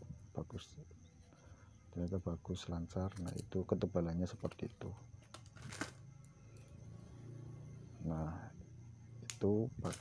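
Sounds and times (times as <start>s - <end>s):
steady low hum: 5.8s - 10.0s.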